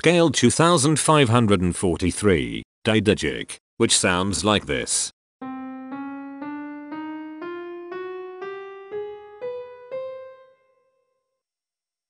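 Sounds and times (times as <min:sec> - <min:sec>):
piano scale ascending: 0:05.4 - 0:11.0.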